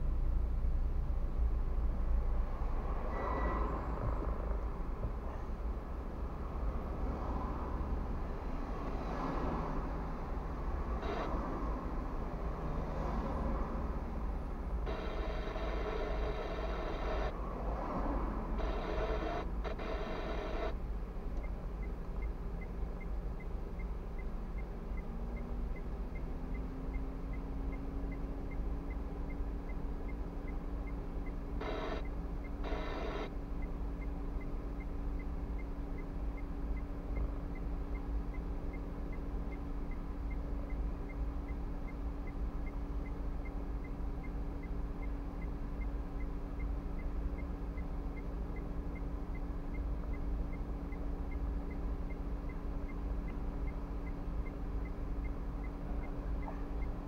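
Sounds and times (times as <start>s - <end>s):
low rumble inside a car: 0.0s - 57.0s
buzzing electronic tone: 11.0s - 11.6s, 14.9s - 17.4s, 18.6s - 20.8s, 31.6s - 33.4s.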